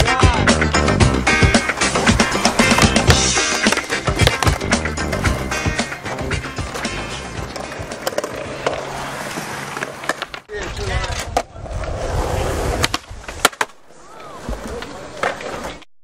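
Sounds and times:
music: 0:00.0 - 0:08.6
skateboard wheels rolling on concrete: 0:00.0 - 0:15.9
skateboard clacking on ground: 0:02.1 - 0:04.9, 0:06.7 - 0:11.5, 0:12.8 - 0:15.8.

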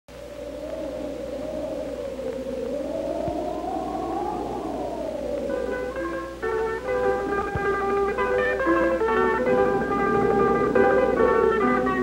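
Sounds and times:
steady low hum: 0:00.1 - 0:12.0
wavering sustained tone: 0:00.1 - 0:12.0.

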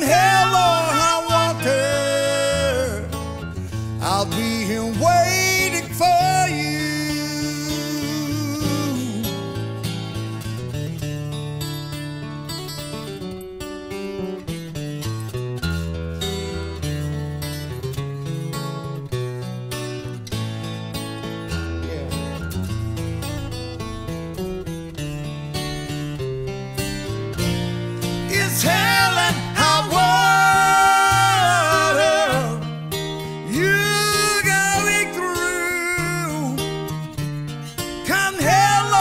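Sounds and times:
man singing: 0:00.0 - 0:03.4, 0:04.0 - 0:09.6, 0:28.2 - 0:36.9, 0:38.0 - 0:39.0
acoustic guitar playing: 0:00.0 - 0:39.0.

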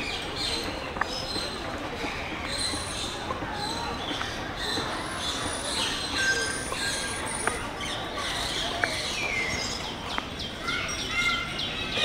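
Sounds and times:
background hubbub: 0:00.0 - 0:12.0.

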